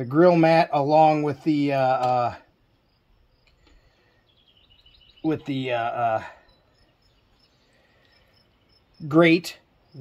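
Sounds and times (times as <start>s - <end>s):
small bird chirping: 2.5s - 10.0s.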